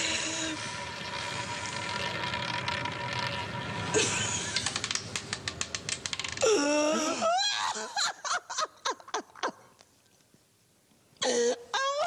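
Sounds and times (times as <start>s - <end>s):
roulette wheel whirring: 0.0s - 6.6s
roulette ball clicking: 4.6s - 6.4s.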